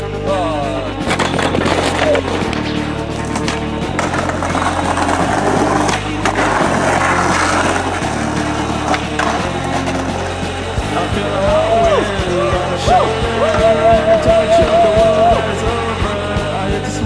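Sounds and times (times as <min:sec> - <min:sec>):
music with bass line: 0:00.0 - 0:17.0
skateboard wheels rolling on asphalt: 0:00.9 - 0:16.8
skateboard clacks: 0:01.0 - 0:16.8.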